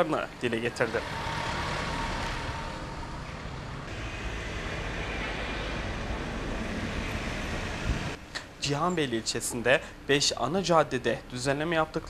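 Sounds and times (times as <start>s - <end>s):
traffic rumble: 0.0s - 12.0s
van driving past: 0.6s - 8.2s.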